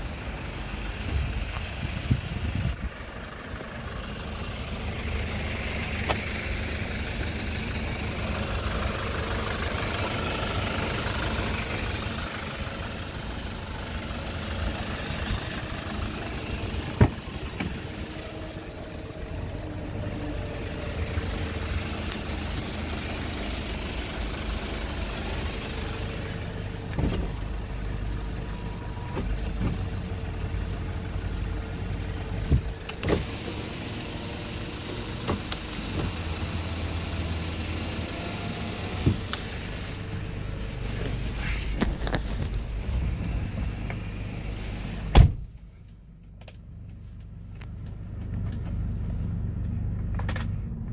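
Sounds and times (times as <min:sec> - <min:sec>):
diesel engine idling: 0:00.0 - 0:50.9.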